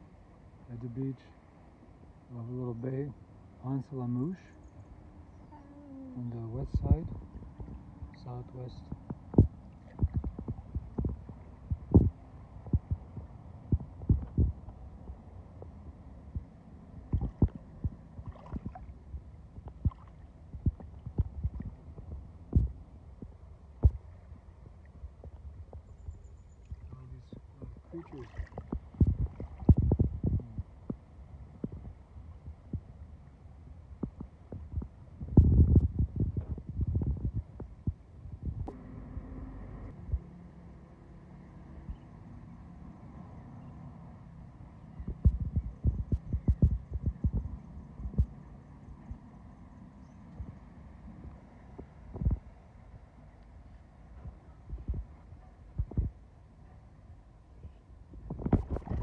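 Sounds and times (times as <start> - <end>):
wind buffeting microphone: 6.4 - 33.1, 33.8 - 38.8, 44.9 - 49.2, 51.2 - 52.6, 54.2 - 56.2, 58.1 - 59.0.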